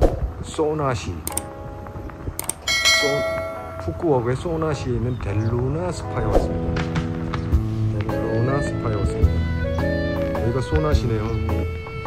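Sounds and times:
double mouse click: 1.3s - 1.5s, 2.4s - 2.6s
bright bell chime: 2.7s - 4.5s.

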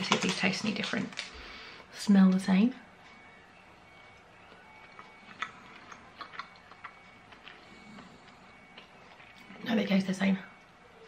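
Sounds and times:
faint chewing mouth clicks: 4.8s - 9.4s.

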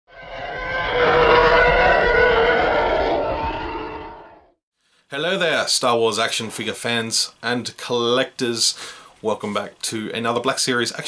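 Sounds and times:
rough roar-like intro tone: 0.1s - 4.6s.

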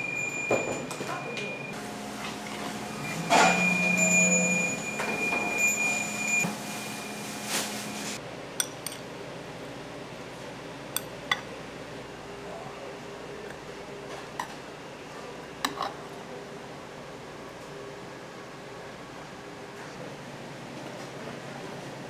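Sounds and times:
tableware clinking: 3.3s - 6.4s, 8.6s - 9.0s.

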